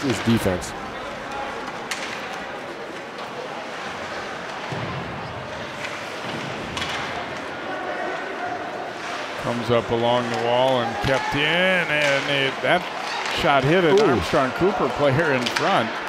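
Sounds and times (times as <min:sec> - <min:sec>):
crowd murmur: 0:00.0 - 0:09.8.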